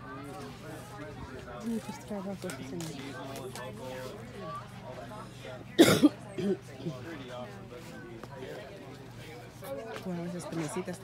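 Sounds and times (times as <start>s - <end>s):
person coughing: 5.8s - 6.6s
throat clearing: 5.8s - 6.6s.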